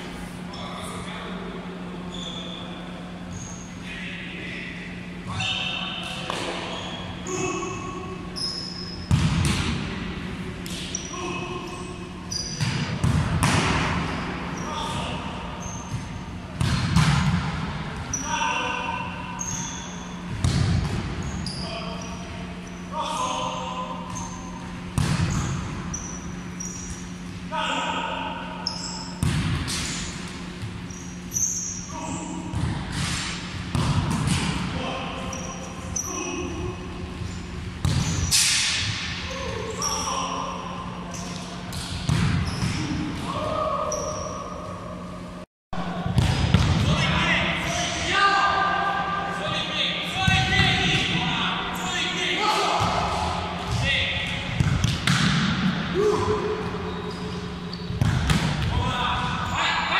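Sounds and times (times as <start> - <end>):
steady low hum: 0.0 - 59.9
shoes squeaking on floor: 2.1 - 3.8, 8.4 - 9.1, 10.9 - 12.7, 15.6 - 16.2, 30.8 - 32.3, 56.8 - 58.0
ball kicks and impacts: 9.1 - 10.0, 12.6 - 14.2, 15.9 - 17.8, 20.3 - 21.2, 24.9 - 25.6, 29.2 - 30.0, 32.5 - 34.7, 37.8 - 39.2, 41.7 - 43.0, 46.1 - 47.0, 54.5 - 55.8, 57.9 - 58.7.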